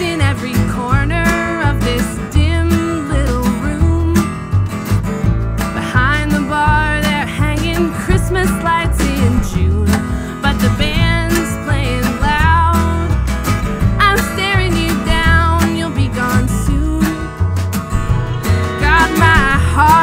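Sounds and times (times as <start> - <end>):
woman singing: 0.0 - 4.5, 5.7 - 13.2, 14.0 - 17.4, 18.7 - 20.0
drums: 0.0 - 20.0
strummed acoustic guitar: 0.0 - 20.0
upright bass: 0.0 - 20.0
fiddle: 17.8 - 20.0.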